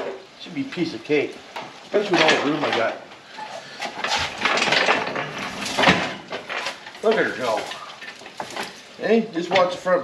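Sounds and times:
metal hoist rattling and clattering: 2.0 - 3.0, 3.9 - 8.8.

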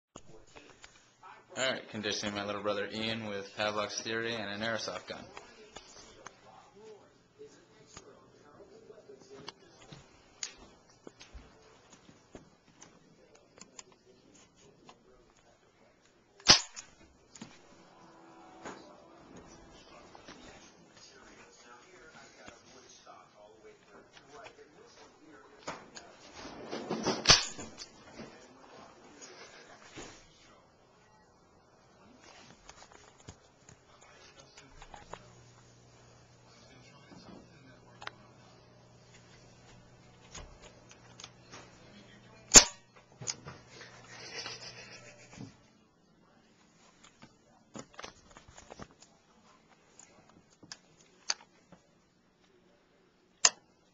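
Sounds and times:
low steady hum: 0.2 - 53.9
airsoft gun shot: 16.4 - 16.8.

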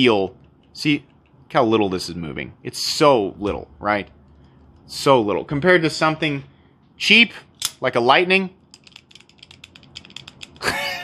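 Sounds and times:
person laughing: 10.6 - 11.0.

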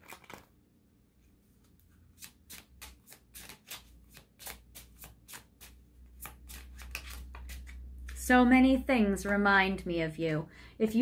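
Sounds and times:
cards being shuffled: 0.0 - 0.6, 1.6 - 8.3.

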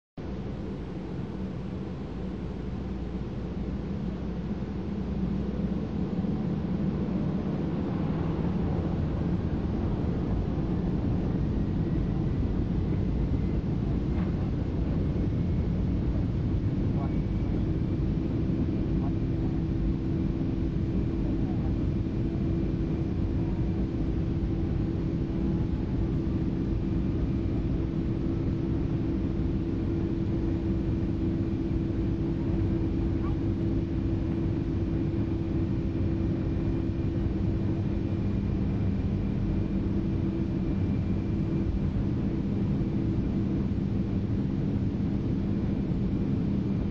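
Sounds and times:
airliner cabin engine drone: 0.2 - 46.9.

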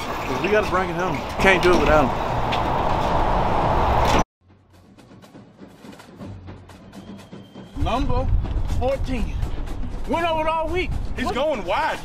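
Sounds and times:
outdoor traffic noise: 0.0 - 7.7
faint music with percussive ticks: 4.6 - 12.0.

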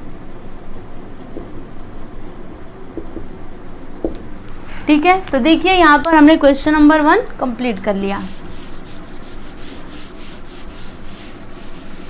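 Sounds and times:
eraser scrubbing whiteboard: 8.1 - 12.0.

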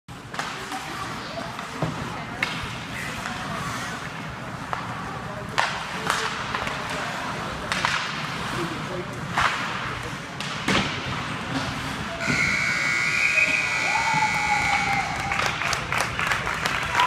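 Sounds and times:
skates scraping ice: 0.1 - 15.2
hockey sticks and puck clacking: 0.1 - 17.0
spectator chatter: 0.2 - 17.0.

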